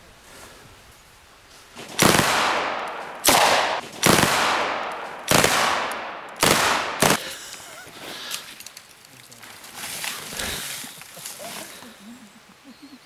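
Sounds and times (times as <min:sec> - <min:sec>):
gunshots echoing: 0:01.8 - 0:07.3.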